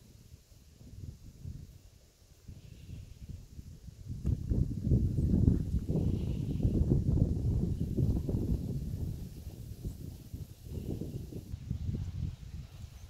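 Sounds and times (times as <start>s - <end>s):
rumbling buffeting on microphone: 0.0s - 13.0s.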